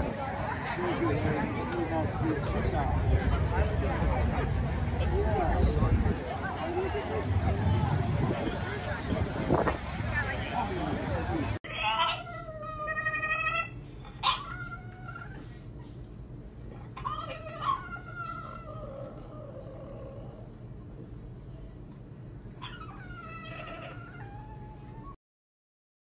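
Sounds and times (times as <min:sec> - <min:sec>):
dog yowling: 0:11.7 - 0:15.4, 0:17.0 - 0:20.2, 0:22.6 - 0:25.1.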